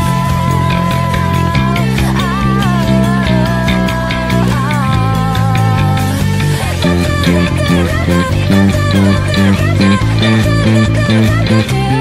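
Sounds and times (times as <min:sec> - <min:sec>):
electric bass playing: 0:00.0 - 0:12.0
pop rock band with singer: 0:00.0 - 0:12.0.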